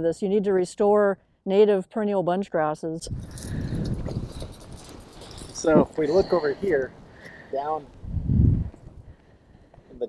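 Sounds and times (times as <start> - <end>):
wind buffeting microphone: 3.0 - 9.9
faint rustles and ticks: 3.1 - 10.0.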